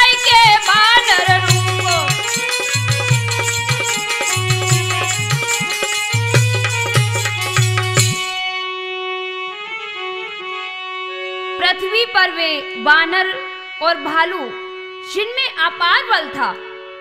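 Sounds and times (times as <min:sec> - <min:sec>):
woman singing folk melody: 0:00.0 - 0:02.2
tabla: 0:00.0 - 0:08.5
harmonium chord: 0:00.0 - 0:17.0.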